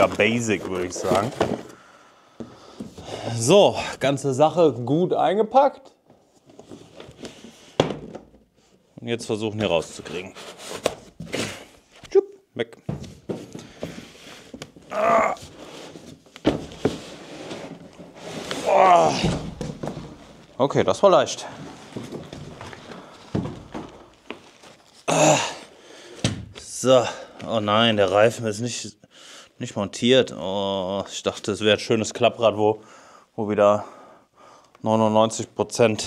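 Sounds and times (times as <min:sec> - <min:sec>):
packaging rustling: 0:00.0 - 0:01.8, 0:21.5 - 0:25.1.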